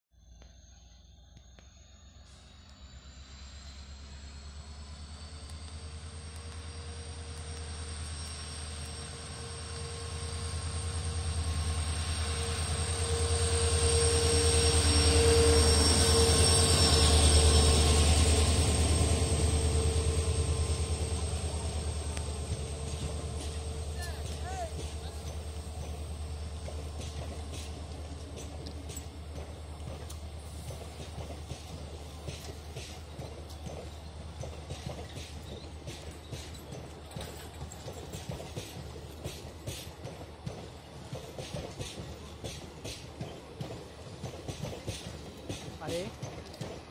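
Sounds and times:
high whine: 0.2 - 25.8
locomotive engine drone: 0.2 - 46.9
train coaches rolling past: 0.2 - 46.9
wheels clicking over rail joints: 20.4 - 46.9.

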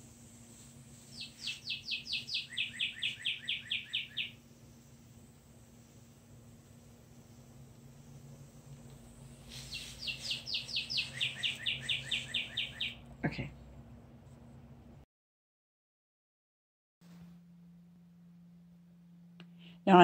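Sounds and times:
songbird singing: 1.1 - 4.5, 9.6 - 13.1.

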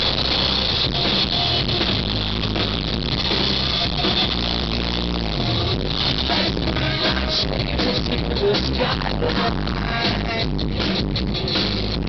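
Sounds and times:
bass: 0.0 - 12.0
drum kit: 0.0 - 12.0
electric guitars: 0.0 - 12.0.

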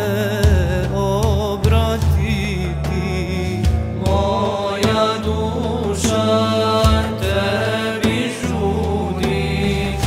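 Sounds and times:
steady instrumental bass: 0.0 - 10.0
group singing a devotional hymn: 3.8 - 10.0.

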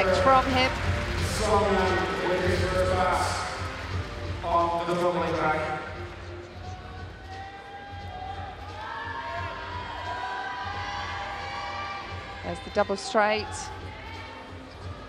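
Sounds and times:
background music with held notes: 0.0 - 15.0
man talking: 1.2 - 3.5.

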